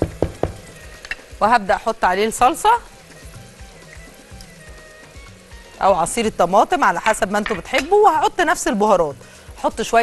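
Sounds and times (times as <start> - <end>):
faint background music: 0.0 - 10.0
tomatoes sizzling in oil: 0.0 - 10.0.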